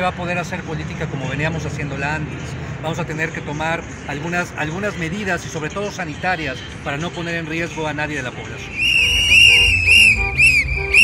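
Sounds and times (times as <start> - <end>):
shrill warbling whistle: 8.7 - 11.0
music with low beat: 8.8 - 11.0.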